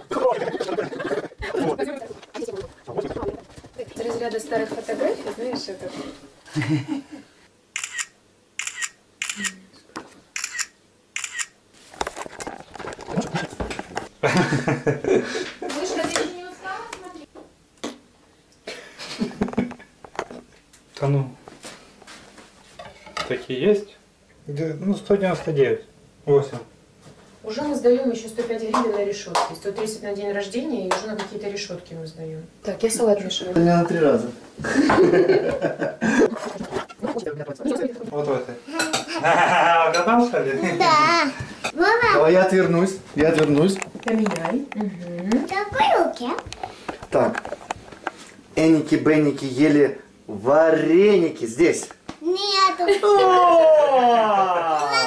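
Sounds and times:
people laughing: 0:00.0 - 0:03.4, 0:06.5 - 0:07.2, 0:14.2 - 0:15.9, 0:34.6 - 0:36.6, 0:39.1 - 0:40.0
people talking: 0:00.0 - 0:06.1, 0:15.6 - 0:17.3
camera shutter double clicks: 0:07.8 - 0:09.6, 0:10.4 - 0:11.6.

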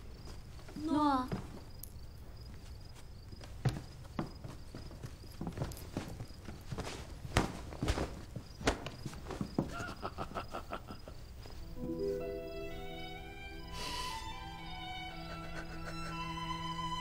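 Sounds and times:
footsteps on wooden floor: 0:00.2 - 0:01.8, 0:02.4 - 0:10.1
man chuckling: 0:09.7 - 0:11.3, 0:15.2 - 0:16.4.

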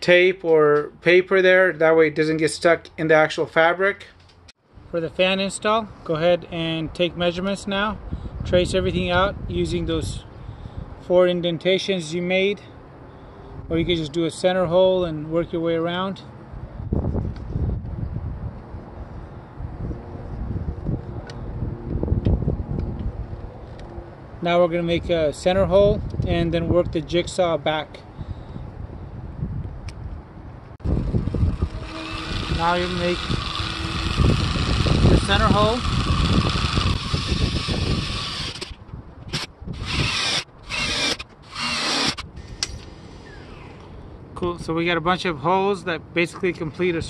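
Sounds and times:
wind buffeting microphone: 0:07.8 - 0:11.1, 0:16.4 - 0:23.9, 0:24.9 - 0:27.4, 0:28.1 - 0:43.6
cordless drill boring through metal: 0:31.0 - 0:43.5.

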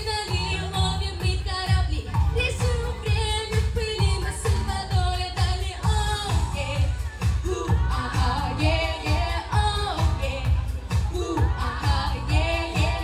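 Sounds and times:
backing track: 0:00.0 - 0:13.0
girls singing pop song: 0:00.0 - 0:13.0
steady kick drum: 0:00.0 - 0:13.0.

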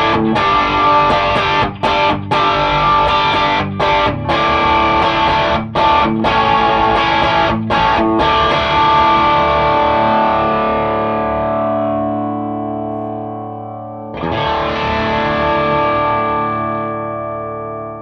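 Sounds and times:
overdriven electric guitar chords: 0:00.0 - 0:18.0.

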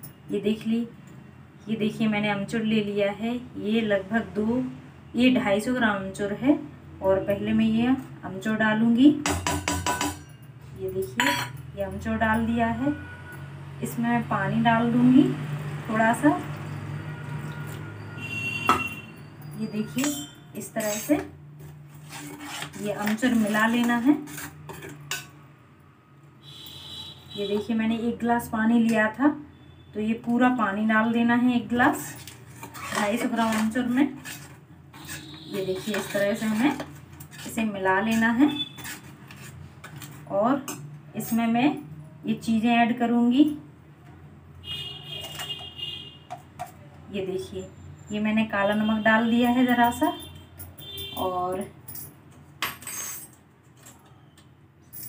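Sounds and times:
spoon clinking on metal bowl: 0:09.2 - 0:11.7
spoon stirring thick paste: 0:19.8 - 0:25.3, 0:31.8 - 0:40.8.

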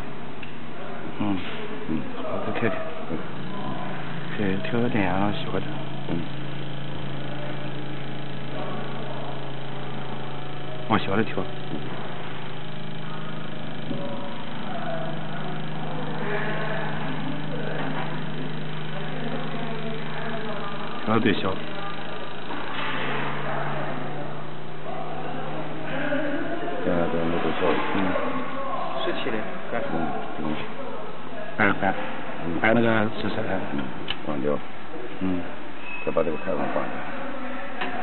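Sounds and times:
electric fuel pump humming: 0:00.0 - 0:38.0.

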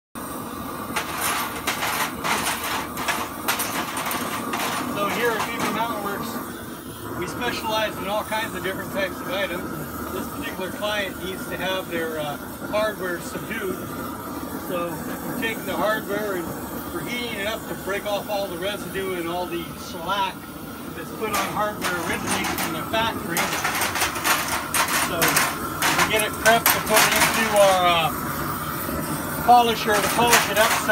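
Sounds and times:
propane torch roaring hiss: 0:00.2 - 0:30.9
metal hooks clinking in a pan: 0:00.9 - 0:06.0, 0:21.0 - 0:28.2, 0:29.5 - 0:30.9.

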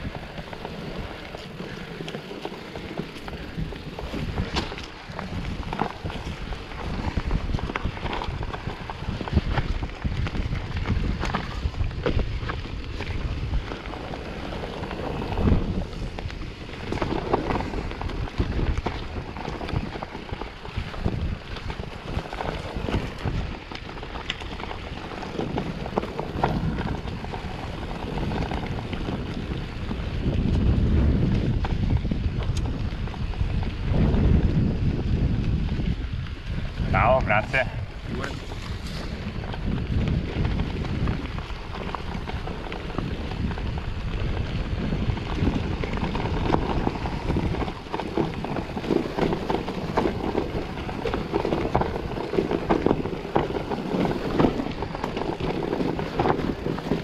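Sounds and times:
bike knocks and rattles: 0:00.0 - 0:36.4, 0:38.1 - 0:57.0
bike tyre noise on trail: 0:00.0 - 0:57.0
wind buffeting microphone: 0:00.0 - 0:57.0.

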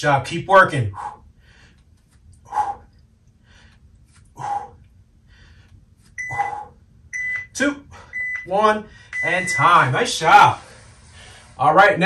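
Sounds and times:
timer beep: 0:06.2 - 0:06.6, 0:07.2 - 0:08.5, 0:09.1 - 0:09.8.

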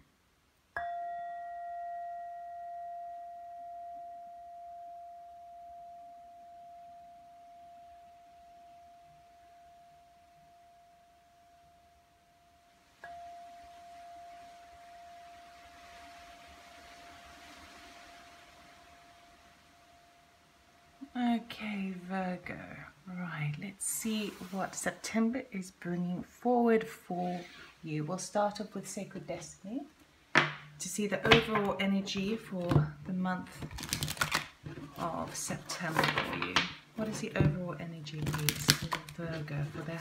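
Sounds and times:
singing bowl ringing: 0:00.8 - 0:21.0.

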